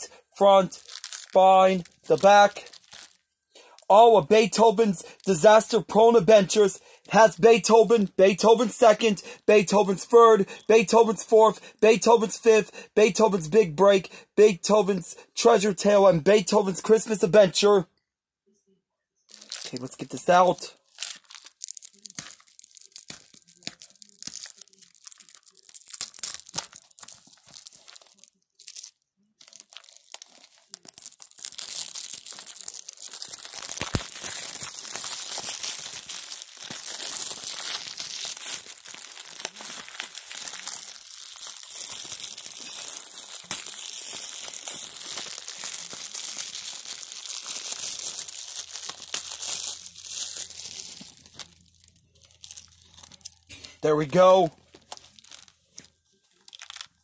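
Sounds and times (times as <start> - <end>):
plastic shrink-wrap tearing: 0.7 - 3.9, 19.3 - 53.5, 54.5 - 57.0.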